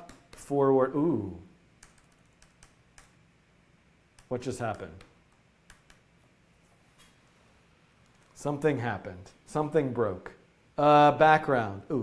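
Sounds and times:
computer keyboard clicks: 0:01.8 - 0:03.2.

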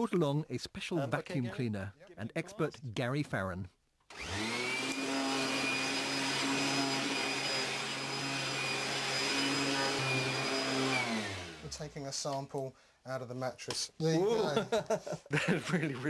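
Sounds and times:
vacuum cleaner motor whining: 0:04.1 - 0:11.8.

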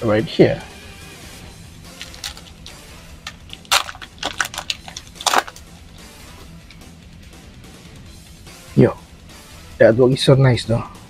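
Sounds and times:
faint background music: 0:00.0 - 0:11.0
foil pack crinkling and tearing: 0:02.0 - 0:05.7.

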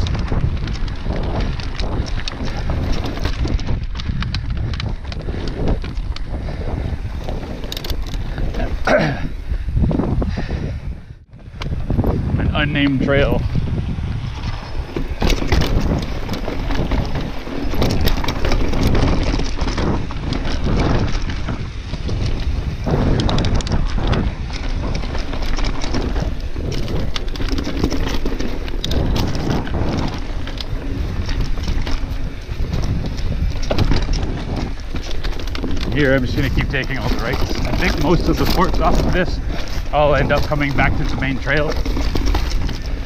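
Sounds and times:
bike clattering over bumps: 0:00.0 - 0:10.7, 0:11.4 - 0:43.0
bike tyres rolling on dirt: 0:00.0 - 0:43.0
wind noise on microphone: 0:00.0 - 0:43.0.

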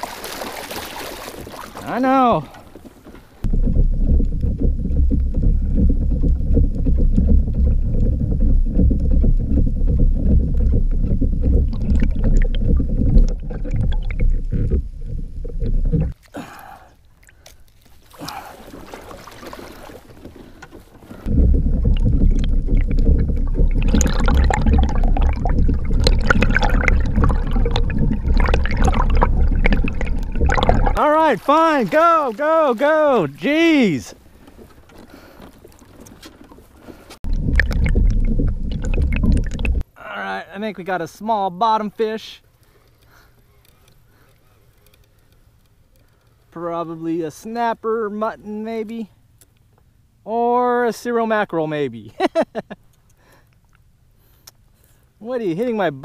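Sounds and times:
muffled underwater rumble: 0:03.4 - 0:16.2, 0:20.4 - 0:31.0, 0:36.9 - 0:39.8.

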